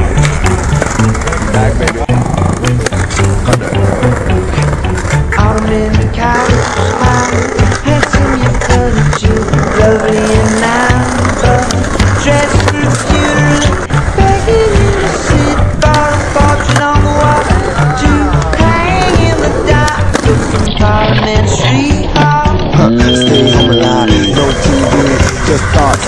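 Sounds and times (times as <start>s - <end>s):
skateboard clacking: 0.0s - 22.8s, 23.8s - 26.0s
skateboard wheels rolling on concrete: 0.0s - 22.9s, 24.1s - 26.0s
music with steady beat: 0.0s - 26.0s.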